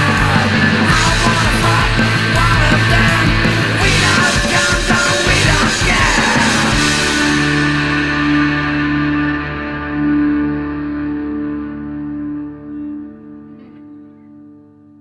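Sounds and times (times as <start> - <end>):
rock song with distorted guitar: 0.0 - 14.6.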